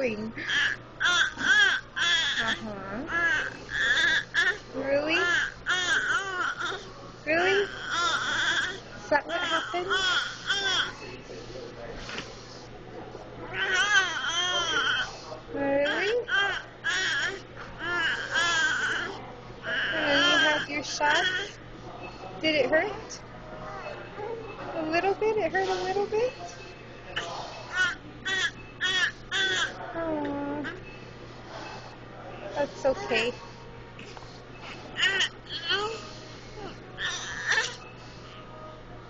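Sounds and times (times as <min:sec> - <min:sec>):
baby babbling crying: 0:00.5 - 0:04.6, 0:05.2 - 0:06.8, 0:07.5 - 0:10.9, 0:13.5 - 0:15.0, 0:15.9 - 0:21.5, 0:35.0 - 0:36.0.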